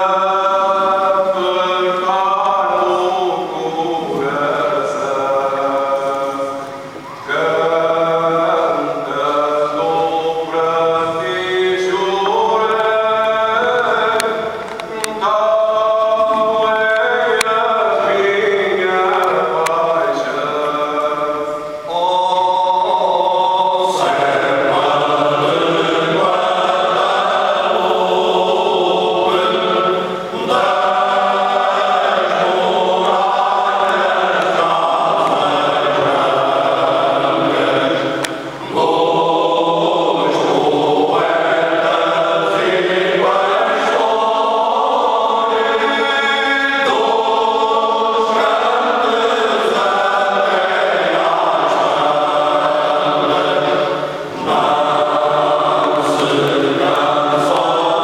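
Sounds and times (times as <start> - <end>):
men's choir singing unaccompanied: 0.0 - 58.0.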